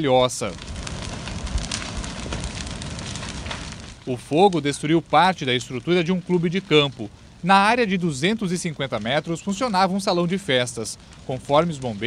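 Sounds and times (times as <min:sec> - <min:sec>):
burning timber crackling and popping: 0:00.0 - 0:12.0
low rumble of flames: 0:00.0 - 0:12.0.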